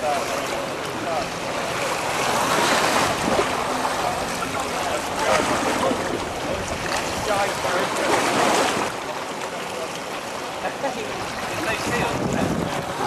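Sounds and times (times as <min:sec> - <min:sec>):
choppy water splashing: 0:00.0 - 0:13.0
wind buffeting microphone: 0:11.2 - 0:13.0.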